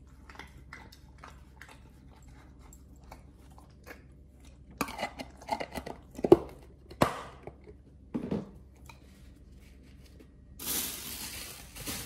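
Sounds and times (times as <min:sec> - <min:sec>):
dog chewing and crunching: 0:00.0 - 0:07.0.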